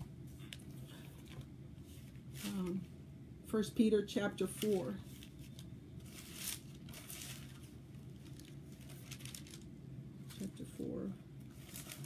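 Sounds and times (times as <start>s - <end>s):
faint low hum: 0.0s - 12.0s
paper pages turning: 4.5s - 9.7s, 11.5s - 12.0s.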